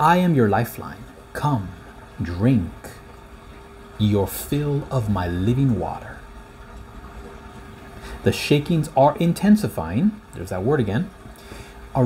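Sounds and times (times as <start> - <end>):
faint continuous hum: 0.0 - 12.0
low room rumble: 0.0 - 12.0.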